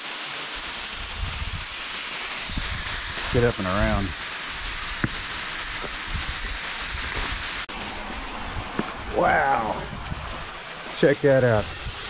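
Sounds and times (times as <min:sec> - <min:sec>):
waterfall spray hissing: 0:00.0 - 0:12.0.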